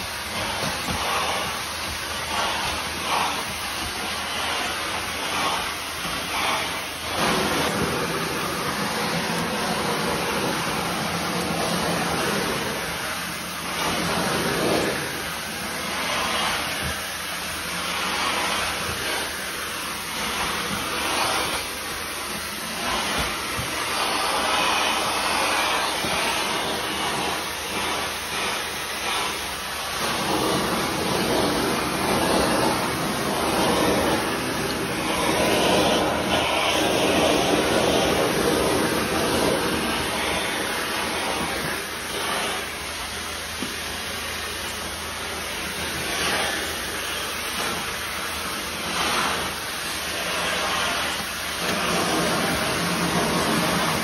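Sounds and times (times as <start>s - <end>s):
extractor suction hiss on wet tile: 0.0s - 54.0s.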